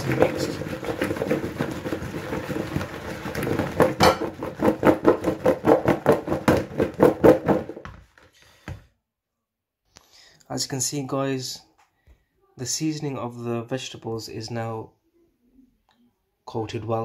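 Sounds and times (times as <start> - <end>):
vegetables rattling in a mixing bowl: 0.0 - 7.9.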